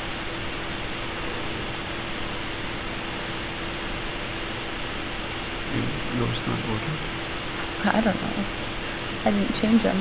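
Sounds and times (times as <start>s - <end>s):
low steady hum: 0.0s - 10.0s
room noise hiss: 0.0s - 10.0s.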